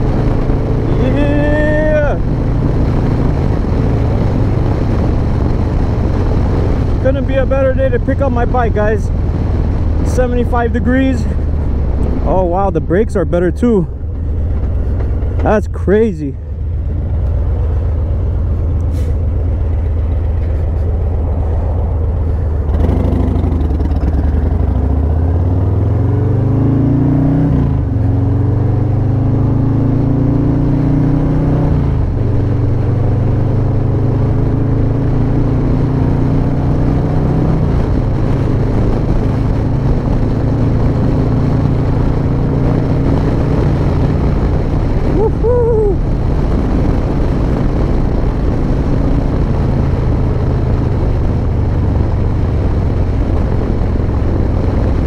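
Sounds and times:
motorcycle engine accelerating: 0.0 - 55.0.

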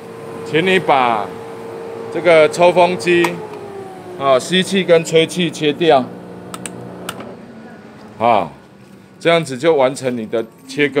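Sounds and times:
exhaust fan and air pump hum: 0.0 - 11.0
power strip switches clicking: 6.5 - 7.3.

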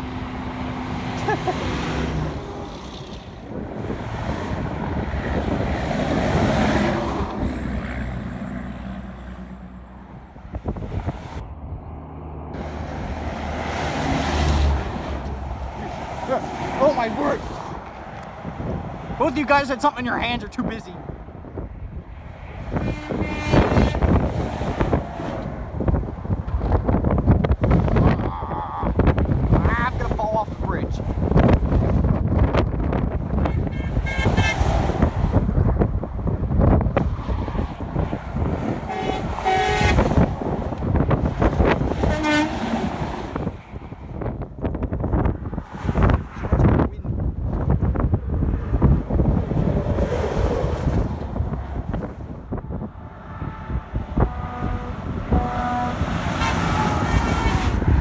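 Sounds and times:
highway traffic noise: 0.0 - 58.0
wind on microphone: 2.1 - 8.1, 10.1 - 16.2, 16.9 - 58.0
truck air horn blasts: 22.7 - 24.2, 33.4 - 34.7, 38.9 - 40.2, 42.0 - 42.8, 53.4 - 57.9.

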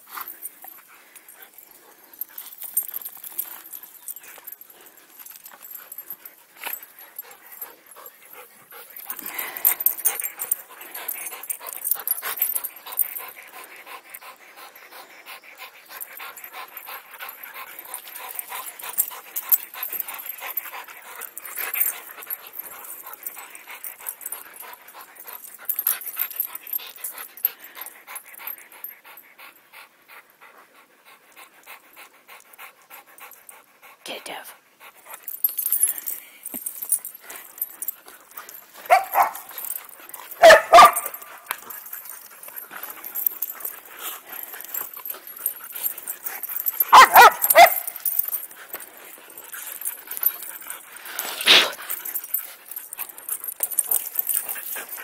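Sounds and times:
dog panting: 0.0 - 55.0.

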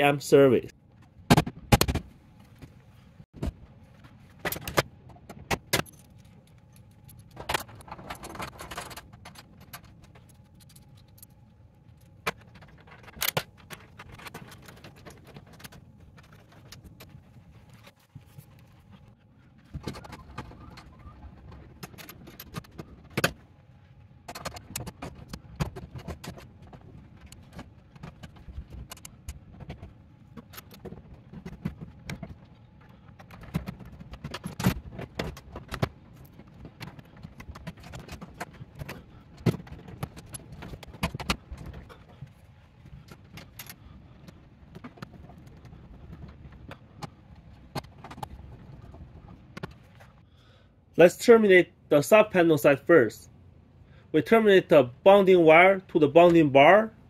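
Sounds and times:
metal clinking and scraping: 5.7 - 19.1.

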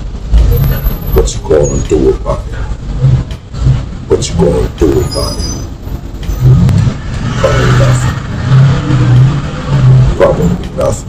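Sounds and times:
deep bass line: 0.0 - 11.0.

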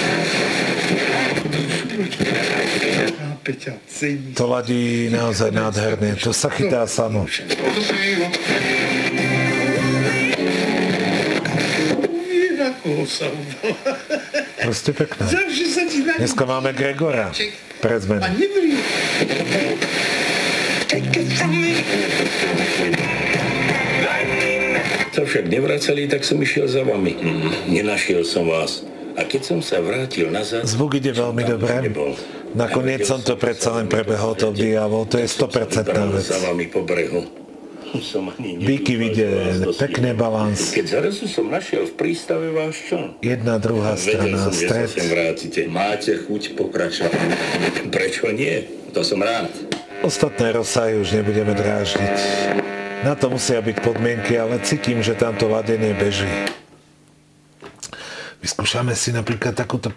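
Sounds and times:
music from radio: 0.0 - 3.2, 7.4 - 14.0, 18.5 - 26.2, 46.9 - 47.9, 50.0 - 56.6
radio broadcast voice: 14.6 - 41.6, 43.2 - 45.8, 46.5 - 56.6
person talking on radio: 50.0 - 56.5.

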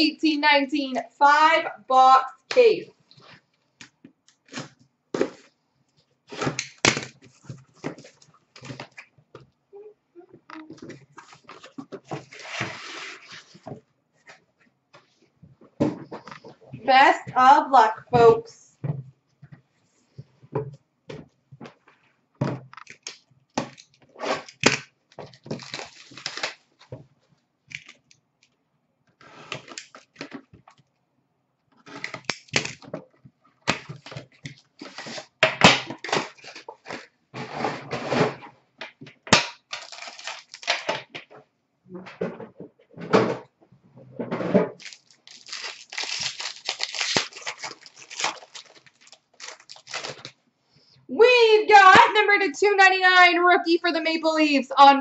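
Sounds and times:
card packs tearing open: 22.8 - 26.7, 33.7 - 35.3, 35.9 - 37.1, 39.3 - 40.9, 44.8 - 50.4
plastic wrap crinkling: 22.8 - 26.9, 36.0 - 37.1, 39.5 - 40.9, 44.8 - 50.4.

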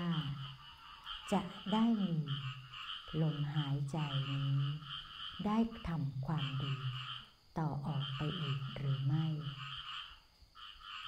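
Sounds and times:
woman speaking calmly: 0.0 - 0.6, 1.2 - 9.7
frogs trilling: 0.0 - 11.0.

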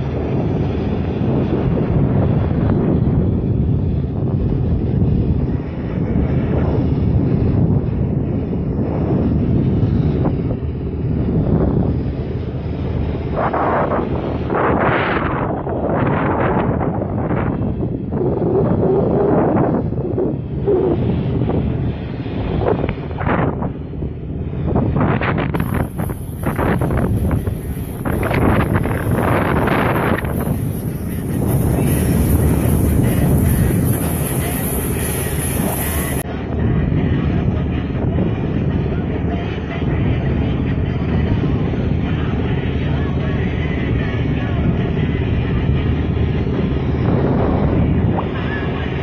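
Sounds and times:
boat engine running: 0.0 - 49.0
wind buffeting microphone: 0.0 - 49.0.

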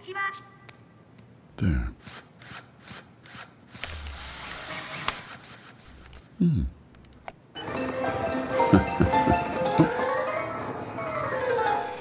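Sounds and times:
small mechanical clicks: 2.0 - 6.3.

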